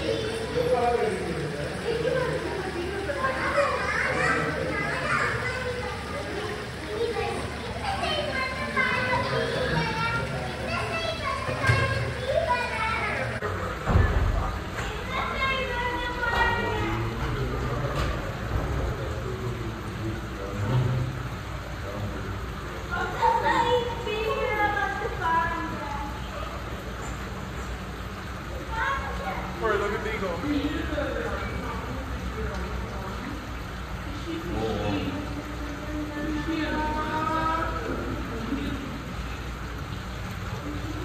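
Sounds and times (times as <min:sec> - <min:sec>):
children talking and calling out: 0:00.0 - 0:18.6, 0:21.4 - 0:41.0
aquarium water bubbling: 0:00.0 - 0:41.0
murmur of visitor chatter: 0:00.0 - 0:41.0.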